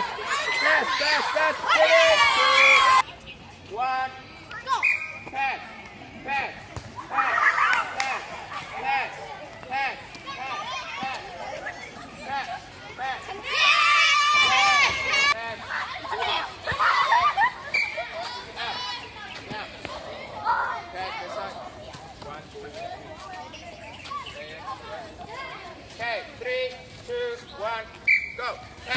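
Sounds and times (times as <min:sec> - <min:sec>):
children shouting: 0:00.0 - 0:03.0, 0:13.2 - 0:19.1.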